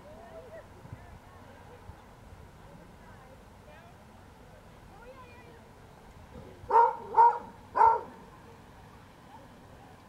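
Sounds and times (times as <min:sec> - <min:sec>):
dog barking: 0:06.7 - 0:08.1.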